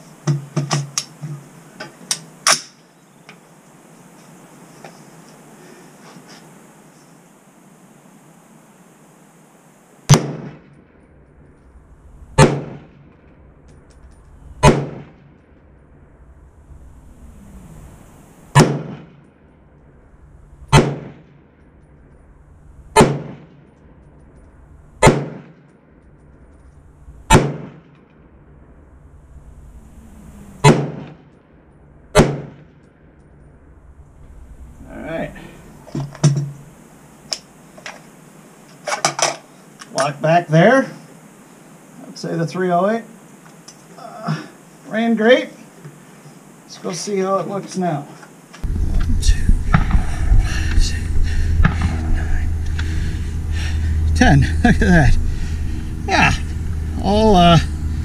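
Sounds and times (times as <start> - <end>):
rifle shots: 10.1 - 11.0, 12.4 - 13.3, 14.6 - 15.4, 18.5 - 19.3, 20.7 - 21.4, 22.9 - 23.7, 25.0 - 25.6, 27.3 - 28.0, 30.6 - 31.2, 32.1 - 32.8
rifle handling clatter: 38.7 - 40.1.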